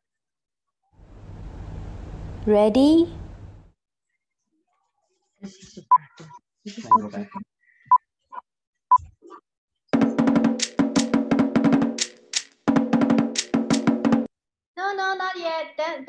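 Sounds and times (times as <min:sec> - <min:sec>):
fast drumming: 0:10.0 - 0:14.3.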